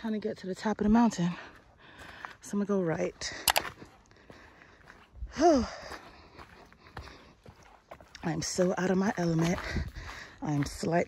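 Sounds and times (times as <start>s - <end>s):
footsteps on dirt trail: 0.0s - 11.0s.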